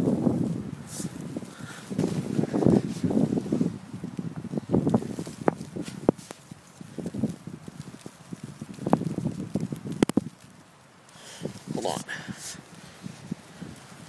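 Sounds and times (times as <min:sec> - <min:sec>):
crunching in snow: 0:00.0 - 0:14.0.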